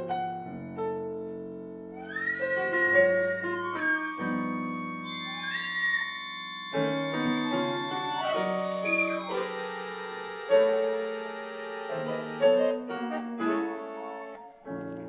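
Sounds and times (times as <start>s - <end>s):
breathy flute notes: 2.0s - 12.8s
accordion sustained chords: 3.4s - 14.4s.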